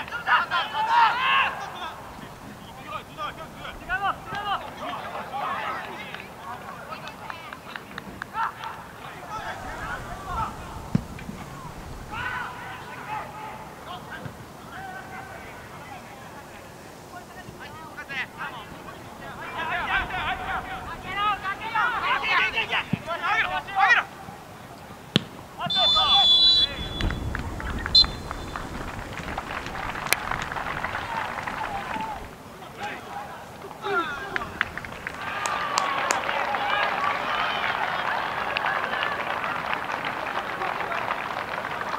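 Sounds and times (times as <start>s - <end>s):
distant voices shouting: 0.0s - 7.0s, 8.3s - 41.0s
crowd clapping: 4.3s - 12.3s, 26.6s - 33.0s, 33.6s - 41.9s
referee's whistle blasts: 25.6s - 28.7s.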